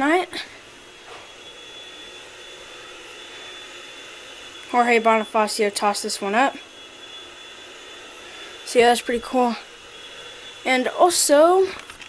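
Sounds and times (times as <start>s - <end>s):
vacuum cleaner running: 0.0s - 12.0s.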